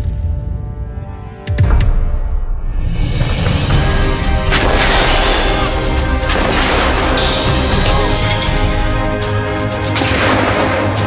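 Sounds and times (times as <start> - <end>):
background music sustained tones: 0.0 - 11.0
howitzer shots: 4.3 - 11.0.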